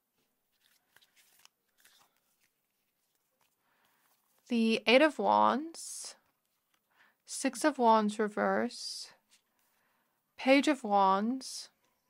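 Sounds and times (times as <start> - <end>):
faint clicks of cards handled: 0.2 - 4.5.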